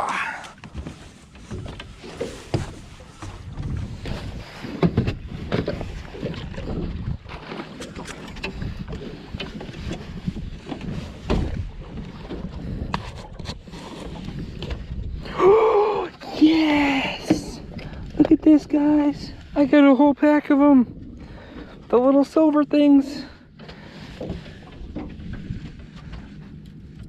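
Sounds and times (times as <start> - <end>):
knocks and thumps on boat: 0.0 - 27.0
wind on microphone: 2.5 - 7.4, 8.4 - 15.4, 24.3 - 26.4.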